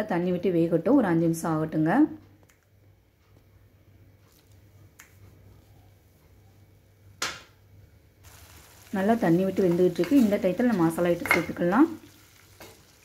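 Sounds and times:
faint low hum: 0.0s - 12.5s
gravy sizzling: 8.2s - 13.0s.

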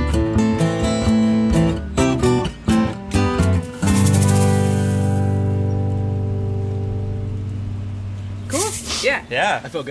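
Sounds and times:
acoustic guitars chord ringing: 0.0s - 9.9s.

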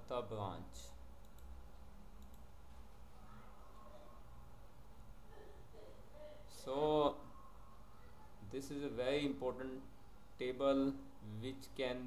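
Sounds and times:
computer mouse clicks: 1.2s - 2.5s.

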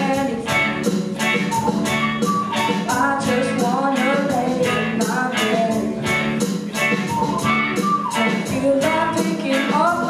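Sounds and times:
boy singing into a microphone: 0.0s - 1.6s, 2.3s - 6.4s, 7.8s - 10.0s
bass guitar: 0.0s - 10.0s
drum kit beat: 0.0s - 10.0s
electric guitar: 0.0s - 10.0s.

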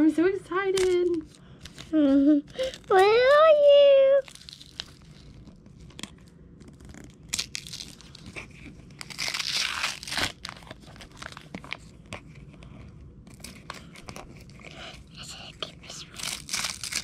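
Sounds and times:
wrapping paper tearing and crinkling: 0.8s - 12.2s, 13.3s - 17.0s.

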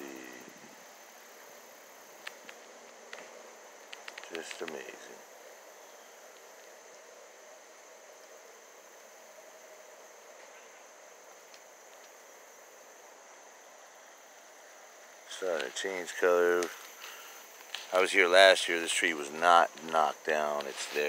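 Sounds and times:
high-pitched insect drone: 0.0s - 2.2s
soft even hiss: 0.0s - 21.0s.

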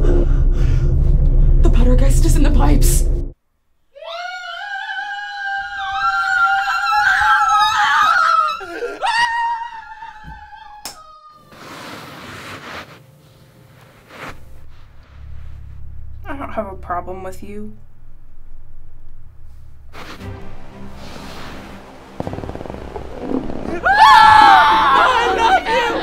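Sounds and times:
high-pitched scream: 3.9s - 11.5s, 21.9s - 26.0s
rush of noise: 19.9s - 26.0s.

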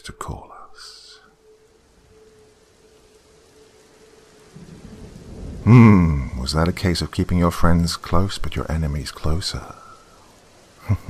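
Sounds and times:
faint steady rain: 0.0s - 11.0s.

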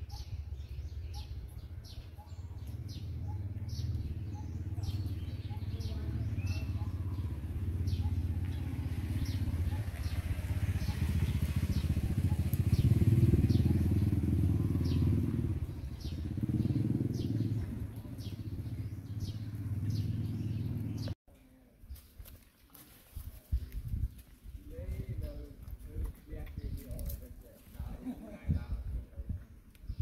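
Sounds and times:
vehicle engine rumbling: 0.5s - 21.2s.

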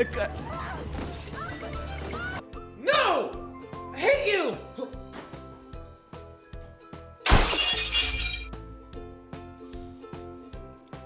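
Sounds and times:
background music: 0.0s - 11.0s
glass shattering: 7.2s - 8.6s.

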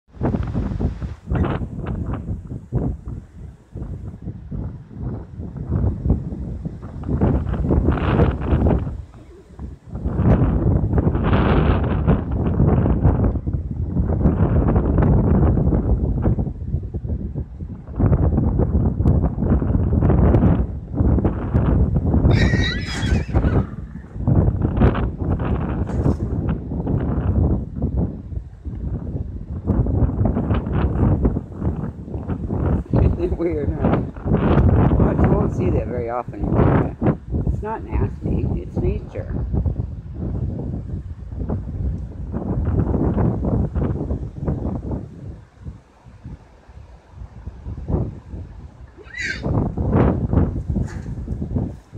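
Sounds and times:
wind buffeting microphone: 0.1s - 51.9s
horse whinnying: 22.3s - 24.2s, 49.0s - 49.5s.

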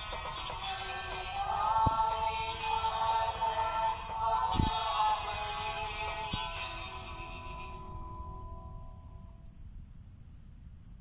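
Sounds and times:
person singing: 0.0s - 8.1s.

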